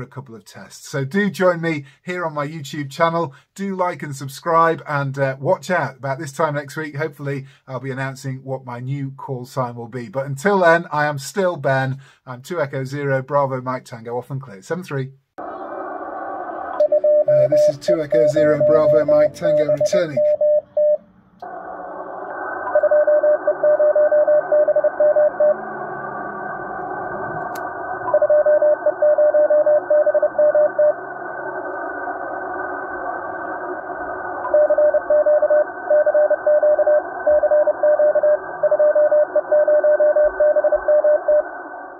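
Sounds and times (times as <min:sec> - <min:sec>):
radio static hiss: 0:14.7 - 0:20.4, 0:21.4 - 0:28.4, 0:30.5 - 0:36.0, 0:41.2 - 0:41.9
morse code tone: 0:16.8 - 0:21.0, 0:22.7 - 0:25.6, 0:28.1 - 0:30.9, 0:34.5 - 0:41.4.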